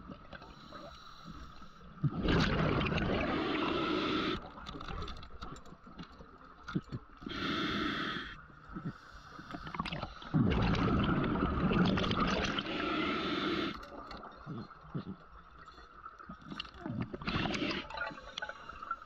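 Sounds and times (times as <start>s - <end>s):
exhaled bubbles rushing: 2.0s - 4.4s, 9.7s - 13.7s
regulator inhalation hiss: 3.5s - 4.4s, 7.3s - 8.4s, 12.6s - 13.8s.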